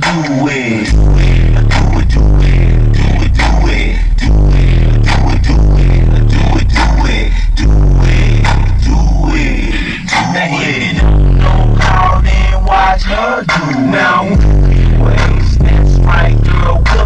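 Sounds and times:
steady drum beat: 0.0s - 9.5s, 10.1s - 17.0s
deep bass notes: 0.8s - 17.0s.

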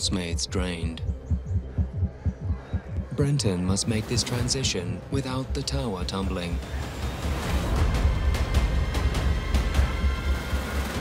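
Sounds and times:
fast throbbing bass pulse: 0.4s - 3.2s.

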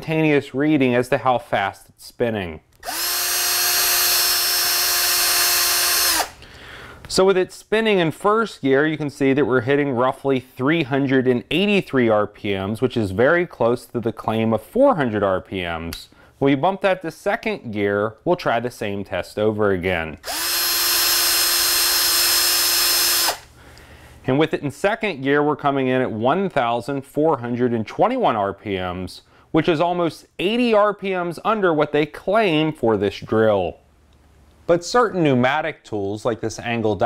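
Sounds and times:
cordless drill motor whining: 2.8s - 6.4s, 20.2s - 23.5s.

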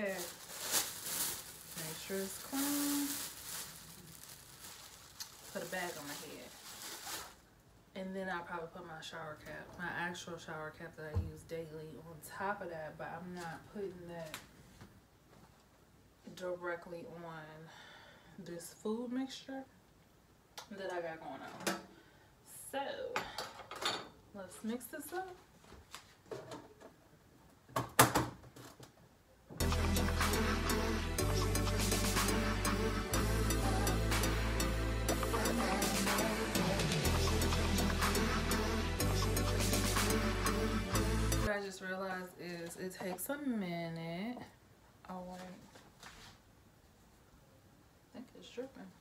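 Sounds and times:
plastic bag crinkling: 0.0s - 7.5s.

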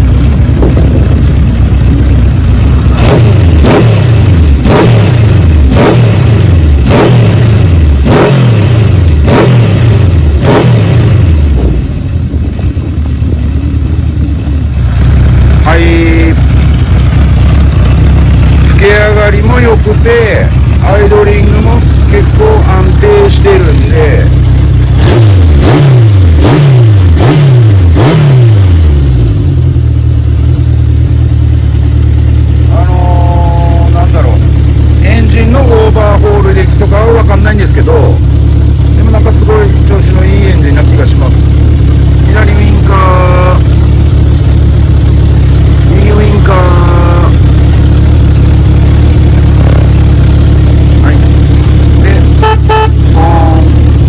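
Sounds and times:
motorcycle engine revving and idling: 0.0s - 54.0s.

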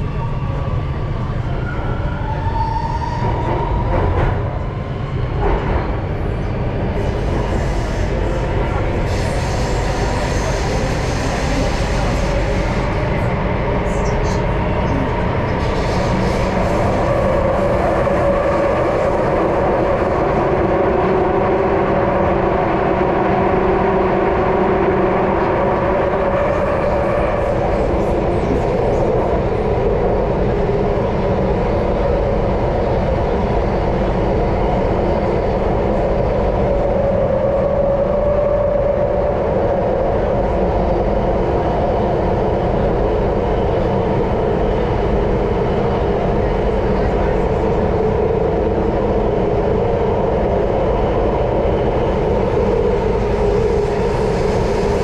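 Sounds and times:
subway train rumbling in tunnel: 0.0s - 55.0s.

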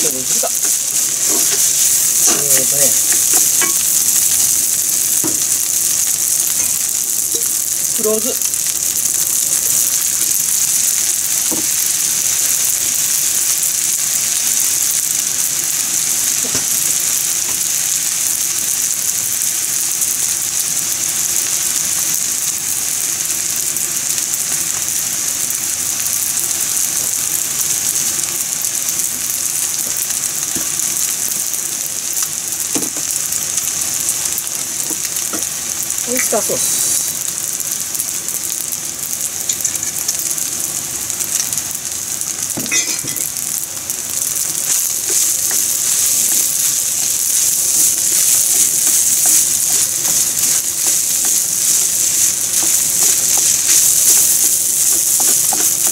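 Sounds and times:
rice sizzling in a frying pan: 0.0s - 55.9s.

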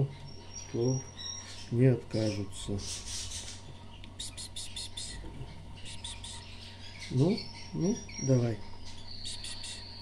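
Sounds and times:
nestling birds cheeping: 0.0s - 10.0s.

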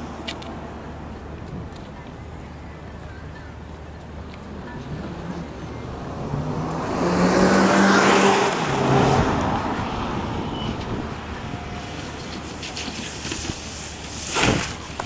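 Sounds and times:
tyre and road noise: 0.0s - 15.0s
car engine accelerating: 4.8s - 11.5s.

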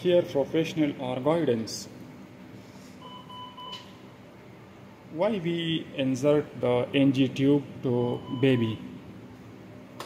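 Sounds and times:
faint room hum: 0.0s - 10.0s
patient monitor beep: 3.0s - 4.0s, 8.0s - 8.9s.

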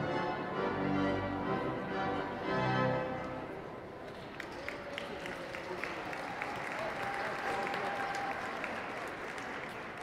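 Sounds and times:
audience applauding: 4.0s - 10.0s.

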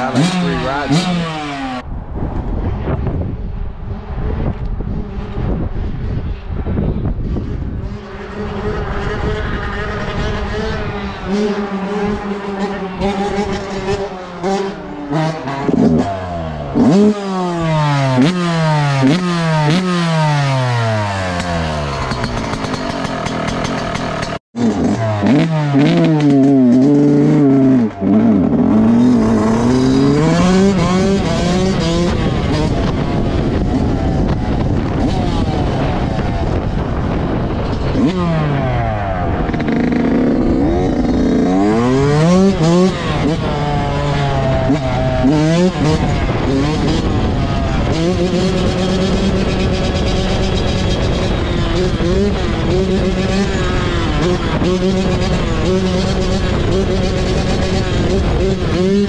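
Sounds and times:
dirt bike engine revving: 0.0s - 1.8s, 7.6s - 59.0s.

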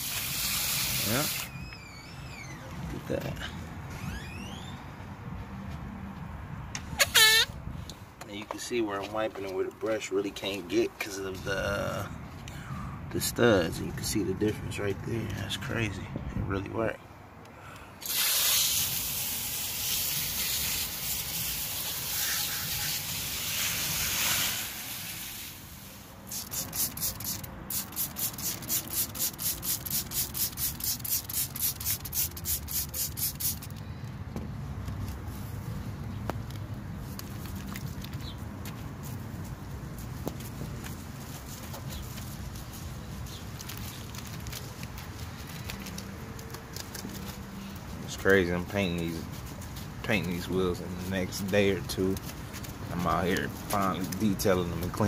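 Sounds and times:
steady hiss of spray: 0.0s - 1.5s, 18.0s - 33.7s.

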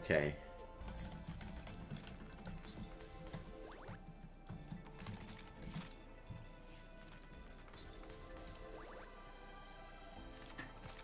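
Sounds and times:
slot game background music: 0.0s - 11.0s.

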